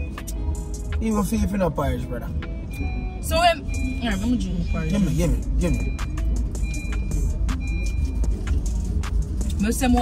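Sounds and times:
car cabin engine rumble: 0.0 - 10.0.

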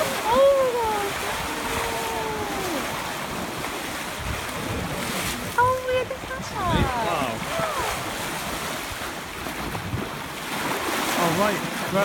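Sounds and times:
water rushing along hull: 0.0 - 12.0
wind buffeting microphone: 0.0 - 12.0.

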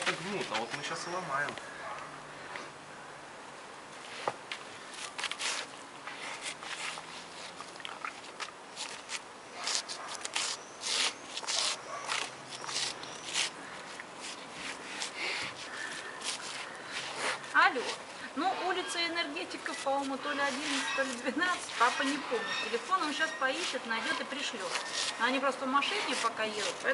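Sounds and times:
bear cub rustling in dirt and straw: 4.1 - 26.9.

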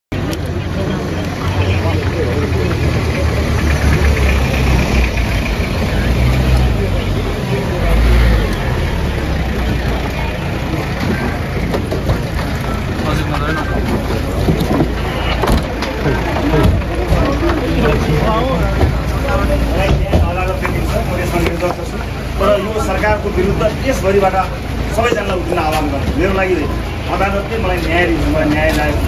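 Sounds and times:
indistinct crowd voices: 0.1 - 29.0.

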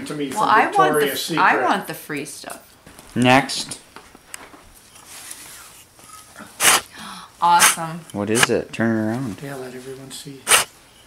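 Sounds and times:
short sharp hissing burst: 6.6 - 6.9, 10.5 - 10.7.

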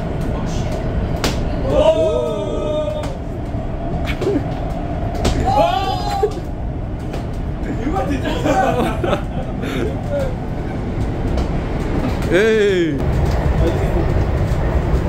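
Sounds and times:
train carriage rumble: 0.0 - 15.0
voices talking: 7.6 - 10.8, 12.0 - 14.3.

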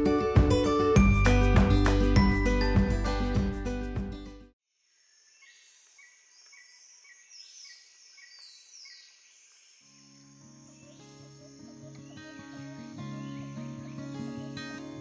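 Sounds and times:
birds chirping: 5.2 - 15.0.

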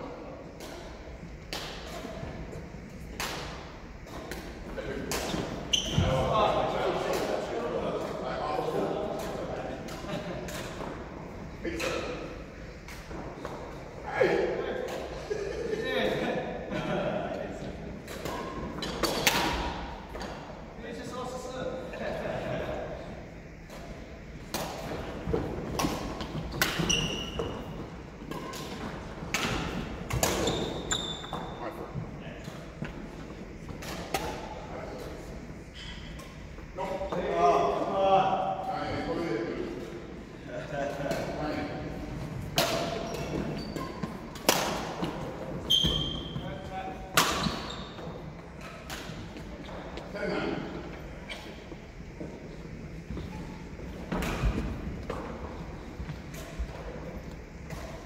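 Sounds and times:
players' voices: 4.3 - 23.4, 24.5 - 51.2
short high squeaks: 26.7 - 27.6, 30.3 - 31.6
racket striking shuttlecock: 47.1 - 47.6.

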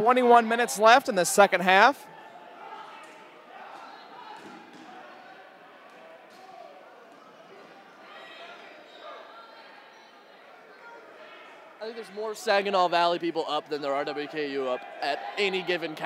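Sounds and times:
dodgeballs smacking: 3.8 - 5.2.

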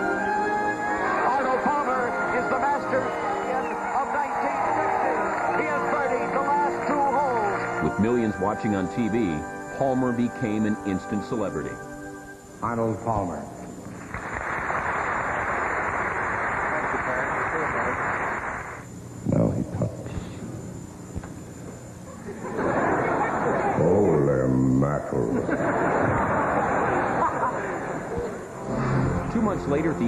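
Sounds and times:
audience applauding: 3.0 - 7.8, 14.1 - 18.5
audience laughing: 22.1 - 23.9, 25.2 - 29.0.

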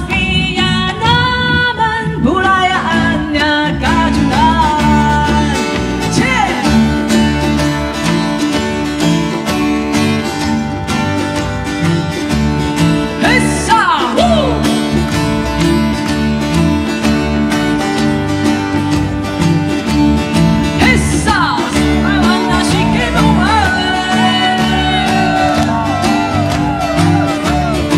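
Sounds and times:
folk band playing: 0.0 - 27.9.

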